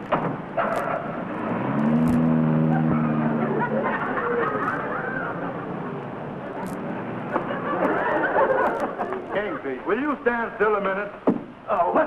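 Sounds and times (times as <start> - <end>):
car engine running: 0.0 - 7.4.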